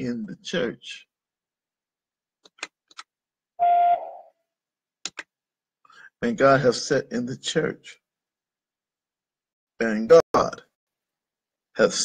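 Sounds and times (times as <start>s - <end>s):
short electronic beep: 3.6s - 4.3s.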